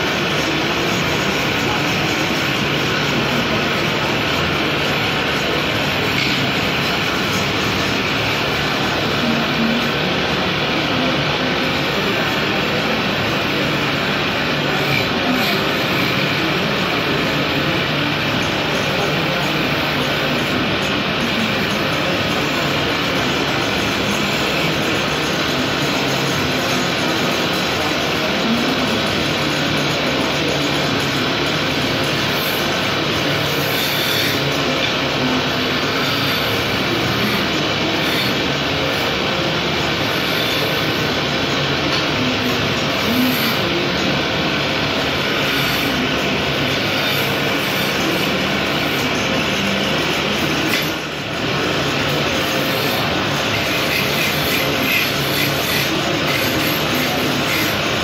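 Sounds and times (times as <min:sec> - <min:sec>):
gouge scraping spinning wood: 0:00.0 - 0:58.0
low machine hum: 0:00.0 - 0:58.0.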